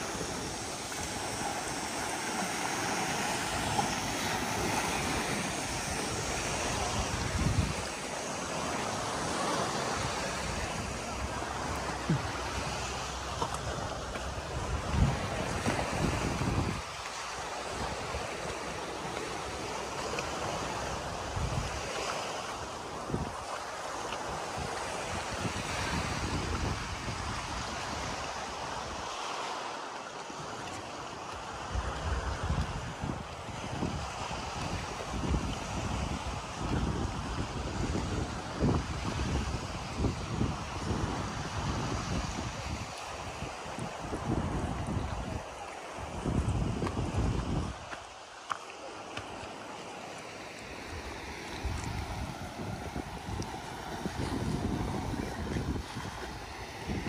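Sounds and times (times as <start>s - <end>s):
wind rushing over microphone: 0.0s - 29.2s, 31.5s - 48.1s, 50.6s - 57.0s.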